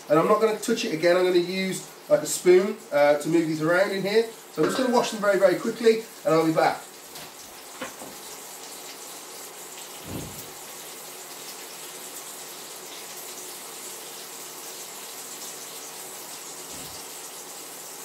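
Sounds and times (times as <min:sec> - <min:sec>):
meatballs sizzling in a pan: 0:01.2 - 0:18.0
dull thump: 0:10.0 - 0:10.5.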